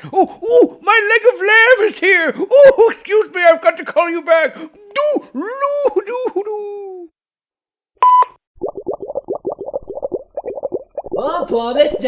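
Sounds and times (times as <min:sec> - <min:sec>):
bubbly gurgling blips: 0:08.6 - 0:12.0.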